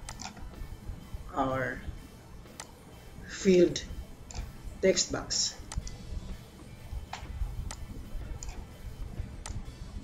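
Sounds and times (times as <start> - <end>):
computer mouse clicking: 0.0 - 0.4, 4.3 - 4.5, 5.7 - 6.0, 7.1 - 8.6, 9.4 - 9.6
low background hum: 0.0 - 10.0.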